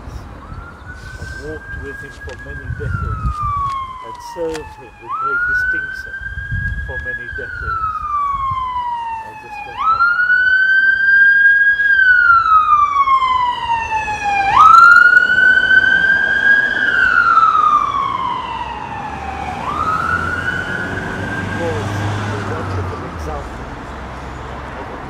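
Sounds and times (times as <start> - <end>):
emergency siren wailing: 0.0 - 25.0
road traffic rumble: 0.0 - 25.0.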